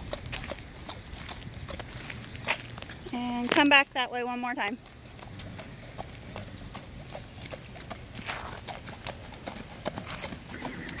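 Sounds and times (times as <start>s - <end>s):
horse hooves clopping on asphalt: 0.0s - 11.0s.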